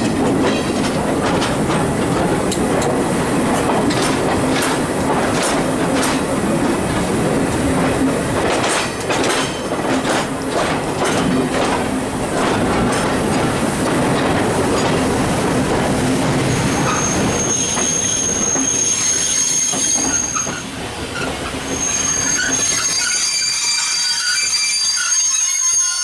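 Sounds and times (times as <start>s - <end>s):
train wheels rumbling and clicking: 0.0s - 25.2s
high steady wheel squeal: 16.5s - 26.0s.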